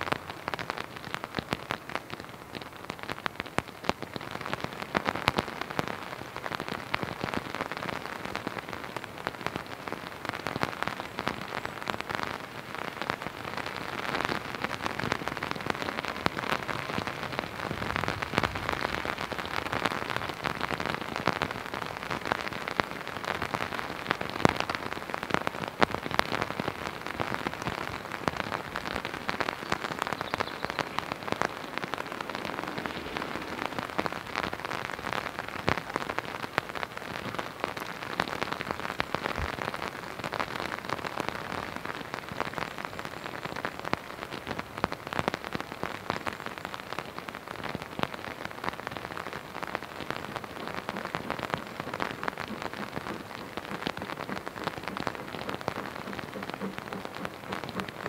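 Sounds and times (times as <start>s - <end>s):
raindrops ticking: 0.0s - 58.0s
steady rain hiss: 0.0s - 58.0s.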